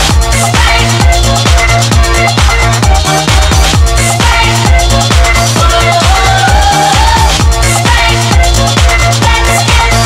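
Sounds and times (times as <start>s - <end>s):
kick drum beat: 0.0s - 10.0s.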